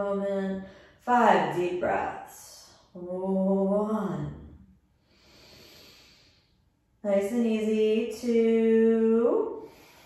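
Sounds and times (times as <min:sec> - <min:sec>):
deep human breath: 0:05.0 - 0:06.7, 0:09.6 - 0:10.0.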